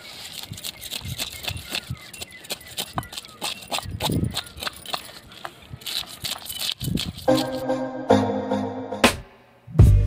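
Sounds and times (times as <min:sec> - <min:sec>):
knife scraping fish scales: 0:00.0 - 0:07.6.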